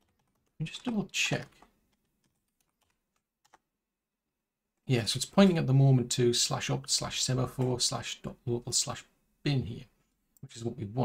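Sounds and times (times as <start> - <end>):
computer keyboard typing: 0.0 - 3.7.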